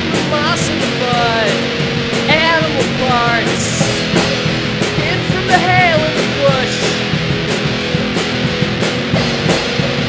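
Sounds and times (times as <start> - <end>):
drum kit beat: 0.0 - 10.0
indie pop band music: 0.0 - 10.0.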